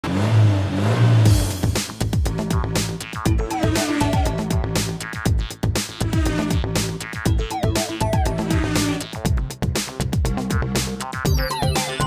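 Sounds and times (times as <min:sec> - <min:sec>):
car engine revving: 0:00.0 - 0:05.1, 0:05.8 - 0:07.1, 0:08.3 - 0:09.1
electronic music: 0:01.3 - 0:12.0.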